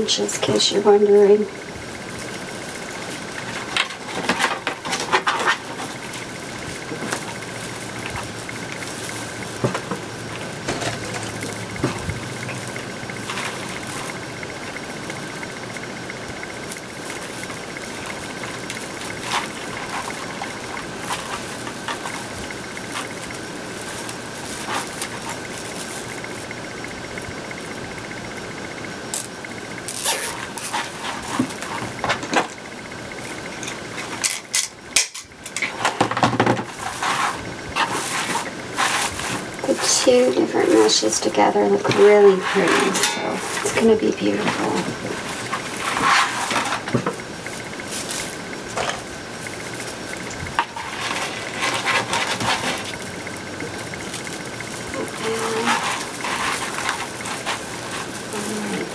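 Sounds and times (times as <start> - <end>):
steady high hum: 0.0 - 58.9
plastic mesh rustling and crinkling: 2.0 - 28.2, 28.8 - 58.9.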